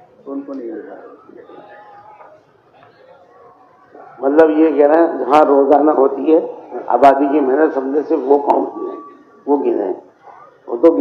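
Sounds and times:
faint voices murmuring: 0.0s - 11.0s
man talking: 4.0s - 10.0s, 10.7s - 11.0s.

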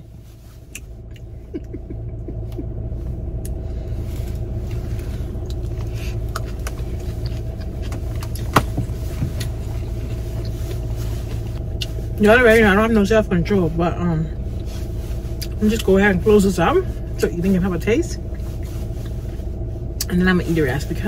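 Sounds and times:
car engine rumble inside cabin: 0.0s - 21.0s.

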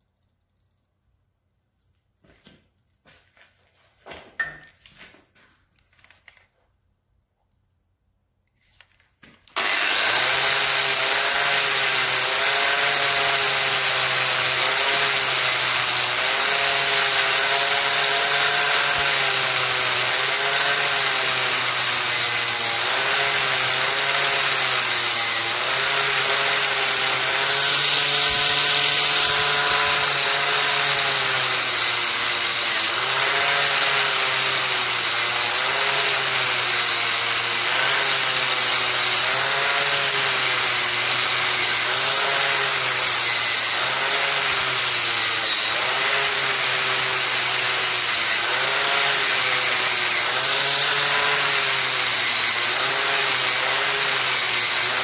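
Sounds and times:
wire wheel brushing hot metal: 9.6s - 54.9s
grinder motor whine: 9.6s - 55.0s.

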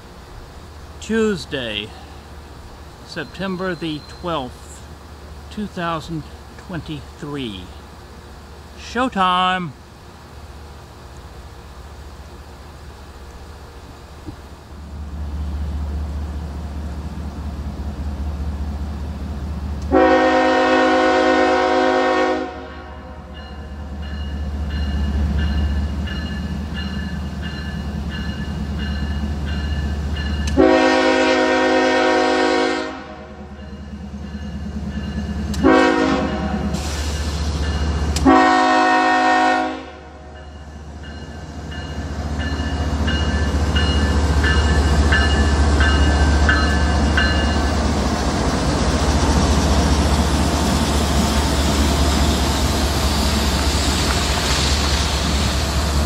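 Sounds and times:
locomotive air horn: 19.9s - 23.2s, 30.6s - 33.3s, 35.6s - 37.0s, 38.2s - 40.1s.

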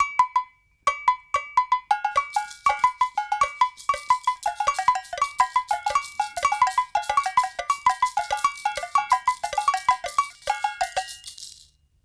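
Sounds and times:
spoon striking glassware melody: 0.0s - 11.6s.

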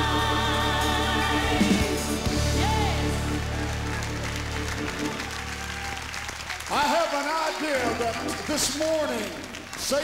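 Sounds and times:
gospel band playing: 0.0s - 10.0s
congregation applauding: 2.7s - 10.0s.

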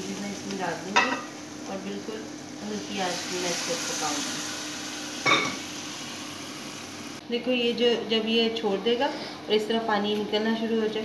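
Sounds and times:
halwa sizzling in a pan: 0.0s - 7.2s.

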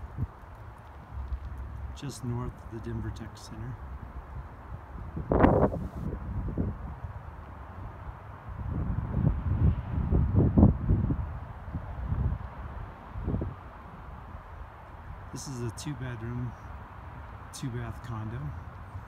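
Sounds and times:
wind buffeting microphone: 0.0s - 15.4s.

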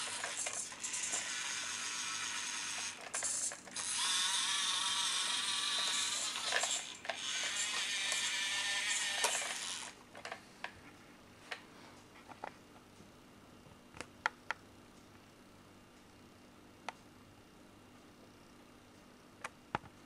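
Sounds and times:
toy tractor motor whining: 0.0s - 10.0s.

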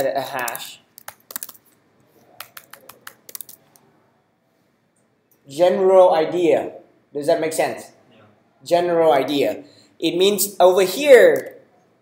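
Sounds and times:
computer keyboard typing: 0.0s - 3.8s.

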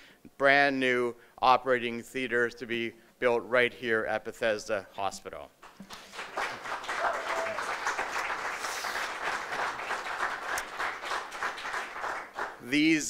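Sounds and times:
audience applauding: 5.6s - 12.6s.

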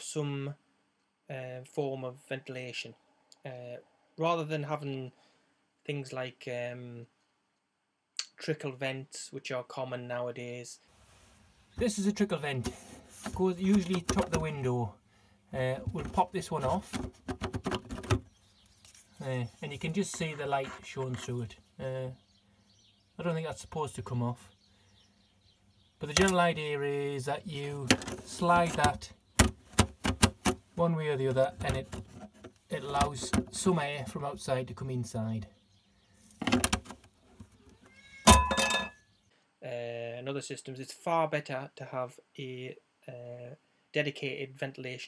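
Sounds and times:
plastic clicks and scrapes: 15.9s - 19.1s, 27.8s - 30.6s, 31.3s - 33.6s.

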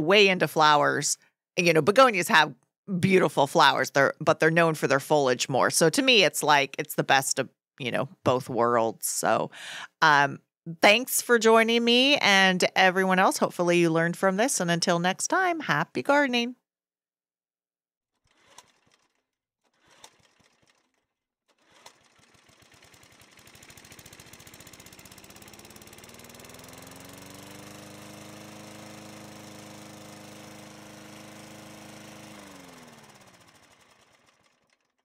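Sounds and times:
motor spinning with fast pulse: 18.1s - 35.0s.

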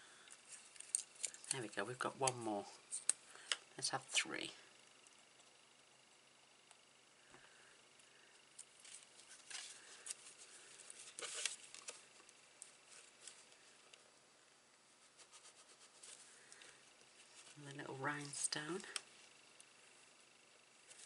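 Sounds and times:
paper rustling: 8.8s - 13.6s.

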